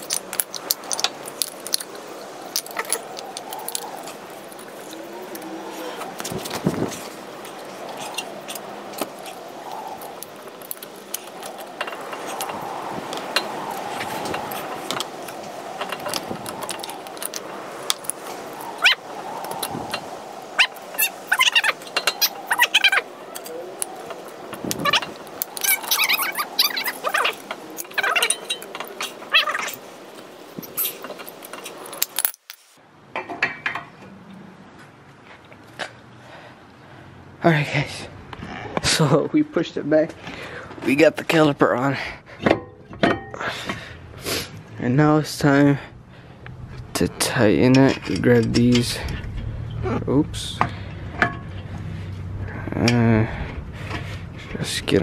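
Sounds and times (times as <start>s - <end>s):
short squeaks: 18.7s - 19.1s, 20.6s - 23.6s, 24.7s - 29.8s.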